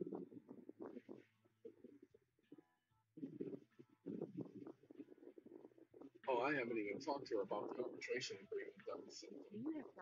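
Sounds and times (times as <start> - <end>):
faint steady tones: 0.0 - 10.0
muffled voice on phone call: 3.2 - 10.0.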